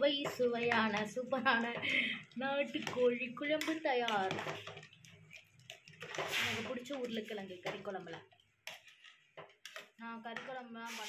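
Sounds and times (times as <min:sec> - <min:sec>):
person talking: 0:06.3 - 0:08.2, 0:10.0 - 0:11.0.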